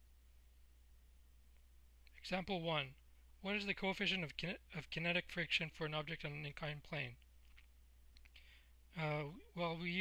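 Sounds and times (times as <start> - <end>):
low steady hum: 0.0 - 10.0
faint clicks: 7.2 - 8.5.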